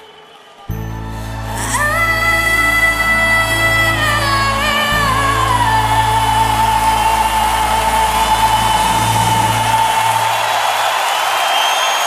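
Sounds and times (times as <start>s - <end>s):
audience cheering and applause: 0.0s - 12.0s.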